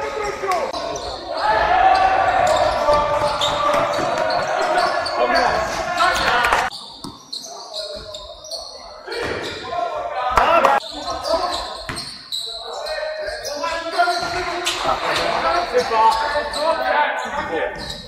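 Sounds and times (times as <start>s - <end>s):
players' voices: 0.0s - 18.0s.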